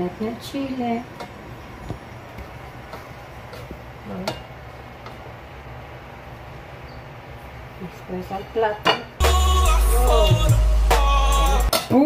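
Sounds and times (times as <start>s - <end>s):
kitchen low hum: 0.0s - 12.0s.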